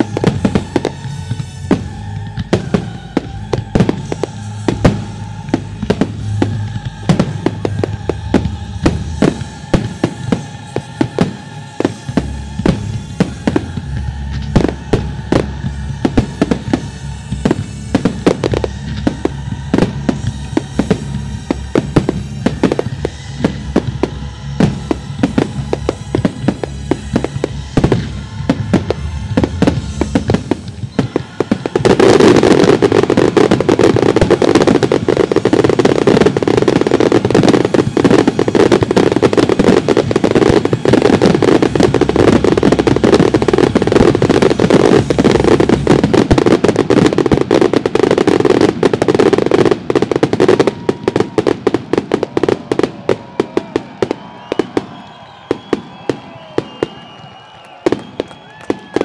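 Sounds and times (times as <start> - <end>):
firework bursts and bangs: 0.0 - 59.0
firework crackle: 0.0 - 59.0.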